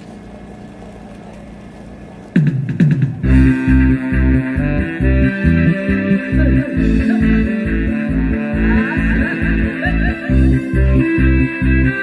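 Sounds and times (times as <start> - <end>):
sound system hum: 0.0 - 12.0
backing track with beat and guitar: 2.4 - 12.0
bass slides: 3.1 - 12.0.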